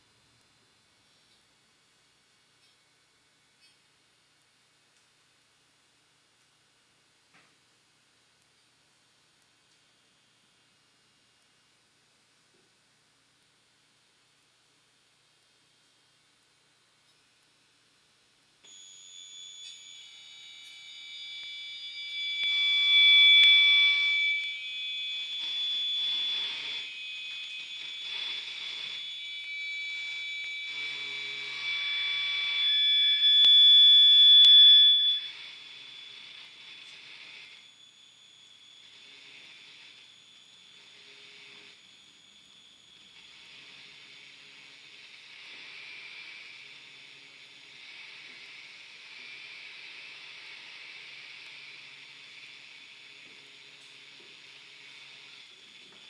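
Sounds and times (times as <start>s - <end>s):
shrill steady electronic tones: 12.9s - 56.0s.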